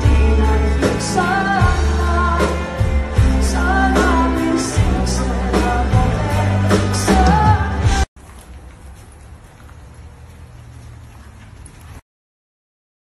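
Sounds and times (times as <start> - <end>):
loud band playing: 0.0 - 8.0.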